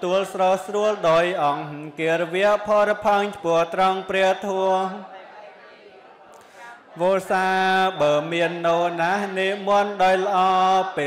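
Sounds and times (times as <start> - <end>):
man chanting into a microphone: 0.0 - 5.2, 7.0 - 11.0.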